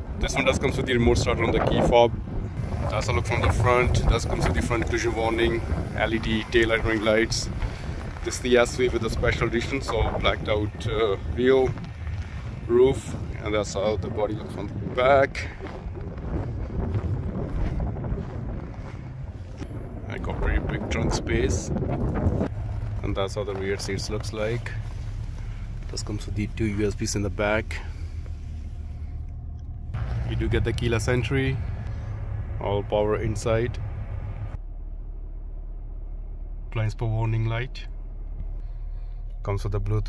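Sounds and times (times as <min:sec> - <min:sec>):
wind buffeting microphone: 0:00.0 - 0:34.6
steady low rumble: 0:00.0 - 0:40.0.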